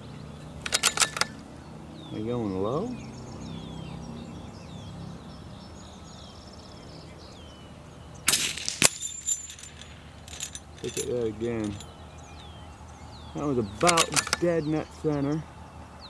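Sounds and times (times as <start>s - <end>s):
bullet pinging steel plate: 0.6s - 1.4s, 8.3s - 12.0s, 13.8s - 14.5s
rifle shot: 8.3s - 9.0s.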